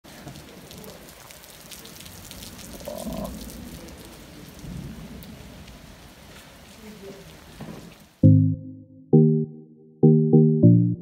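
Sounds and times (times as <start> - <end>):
heavy rain falling: 0.0 - 8.2.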